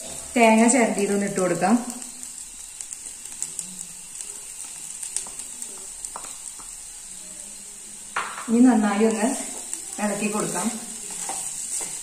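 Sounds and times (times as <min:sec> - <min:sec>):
potatoes sizzling in a pan: 0:00.0 - 0:12.0
wooden spatula scraping a pan: 0:09.3 - 0:12.0.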